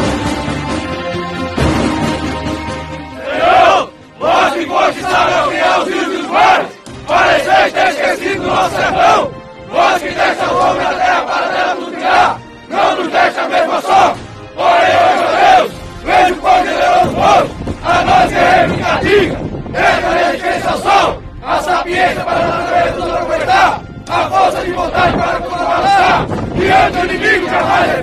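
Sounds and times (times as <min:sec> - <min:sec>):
men shouting a chant: 0:03.2 - 0:28.0.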